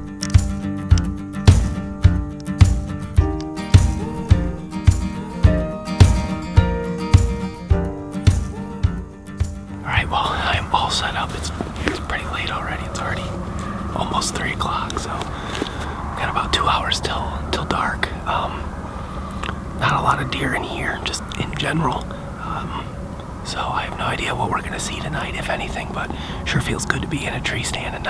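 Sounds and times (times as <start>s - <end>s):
man whispering: 9.8s - 28.0s.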